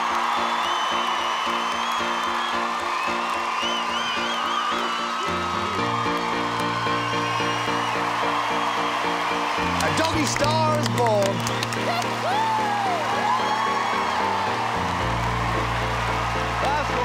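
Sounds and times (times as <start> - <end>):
audience cheering and clapping: 0.0 - 17.0
upbeat backing music: 0.0 - 17.0.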